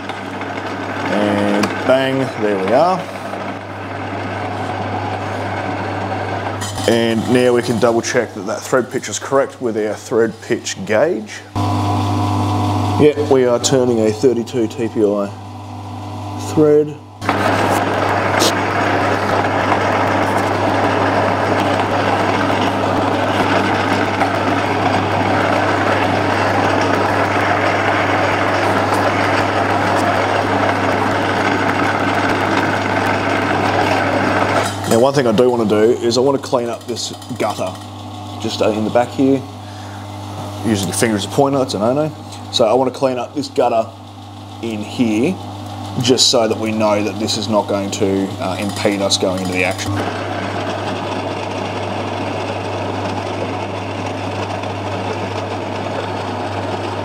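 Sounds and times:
metal lathe humming: 0:00.0 - 0:57.0.

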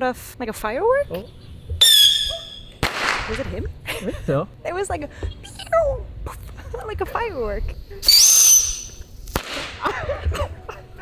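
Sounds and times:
whistling firework: 0:01.8 - 0:03.2, 0:08.0 - 0:09.8
firework bang: 0:02.8 - 0:03.5
firework hiss: 0:08.0 - 0:09.8.

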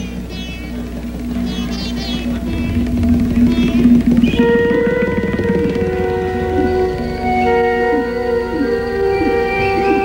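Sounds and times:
long held chord: 0:00.0 - 0:10.0.

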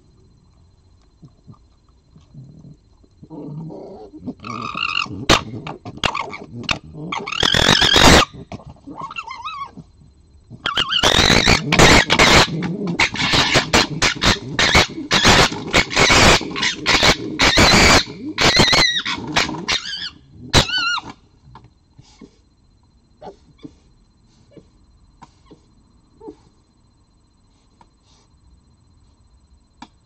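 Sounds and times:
foxes gekkering chatter: 0:03.6 - 0:21.2
high wavering squeals: 0:07.1 - 0:08.5, 0:10.7 - 0:21.2.

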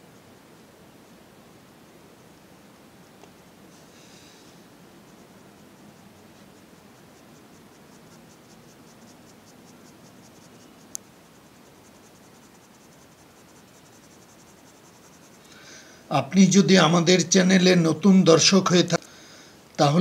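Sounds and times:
pencil scratching on paper: 0:05.0 - 0:15.4.

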